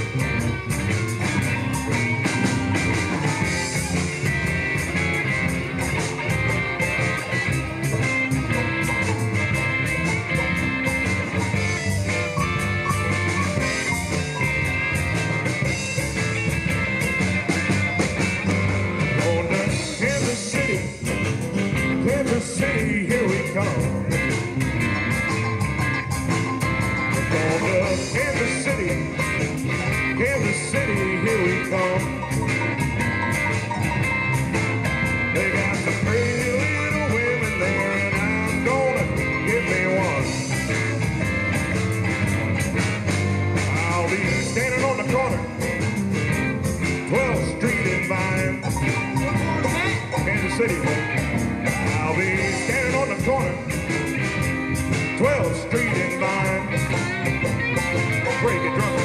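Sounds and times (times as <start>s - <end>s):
blues band playing: 0.0s - 59.0s
cymbals keeping a beat: 0.0s - 59.0s
lead guitar bending notes: 0.0s - 59.0s.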